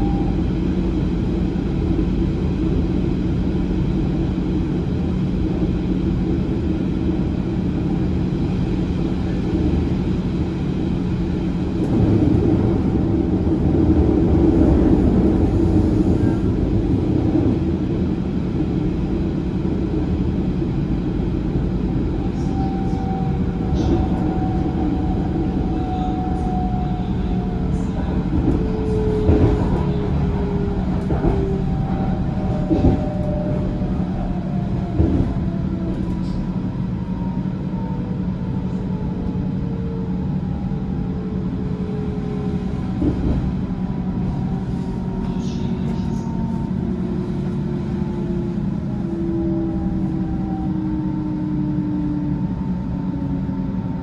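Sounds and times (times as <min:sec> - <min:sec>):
train wheels rumbling on track: 0:00.0 - 0:54.0.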